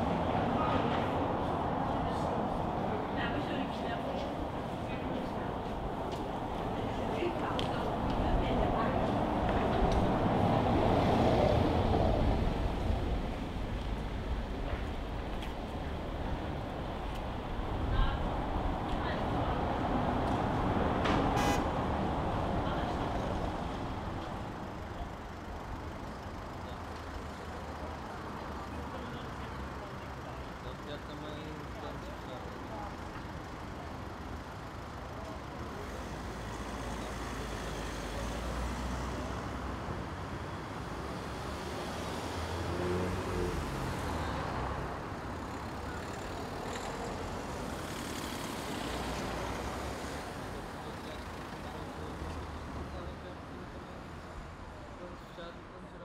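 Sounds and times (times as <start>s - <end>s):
people's voices: 0.0s - 13.9s
road traffic passing: 0.0s - 56.0s.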